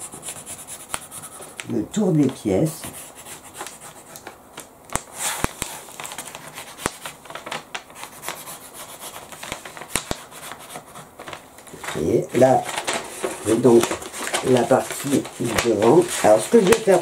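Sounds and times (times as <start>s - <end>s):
pencil rubbing on paper: 0.0s - 1.5s.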